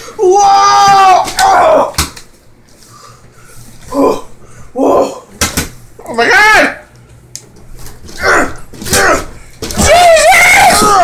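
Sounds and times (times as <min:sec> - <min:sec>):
man screaming: 0:00.2 - 0:02.0, 0:08.2 - 0:11.0.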